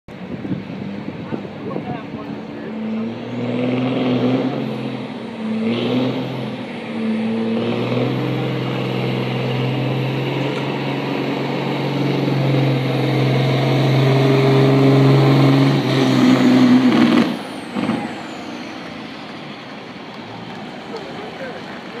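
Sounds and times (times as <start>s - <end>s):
truck diesel engine at full throttle: 0.1s - 22.0s.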